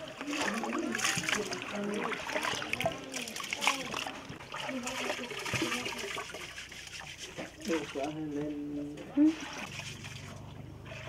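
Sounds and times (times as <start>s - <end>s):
hands stirring rice in water: 0.0s - 11.0s
water splashing: 0.0s - 11.0s
water trickling into basin: 0.0s - 11.0s.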